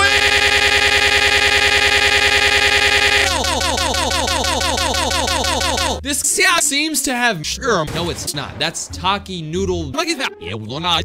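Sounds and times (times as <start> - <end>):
man's shout in stutter loop: 0.0 - 6.2.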